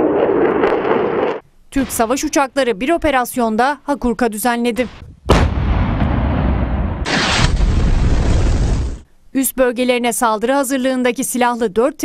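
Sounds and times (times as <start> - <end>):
bomb explosions rumbling: 4.9 - 9.0.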